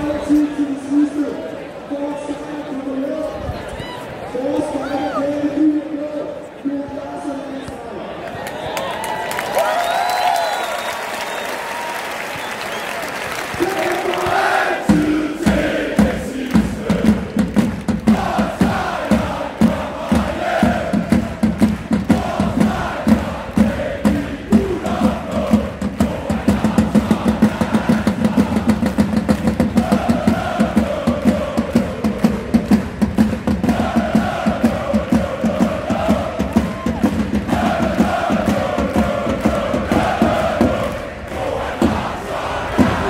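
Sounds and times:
crowd singing a chant: 0:13.6 - 0:43.0
bass drum beats: 0:14.2 - 0:43.0.

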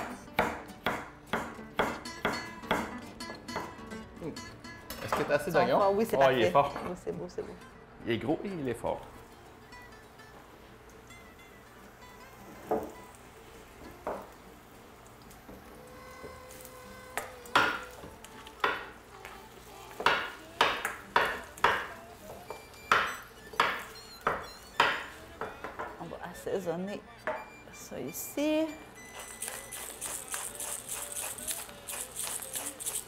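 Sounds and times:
onions sizzling in a wok: 0:09.5 - 0:26.2, 0:29.2 - 0:33.0
knife chopping on wooden board: 0:17.2 - 0:17.9.

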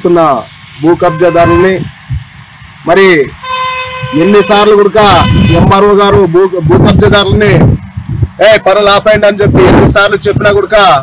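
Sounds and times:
vehicle horn honk: 0:01.0 - 0:01.9, 0:03.4 - 0:06.0.

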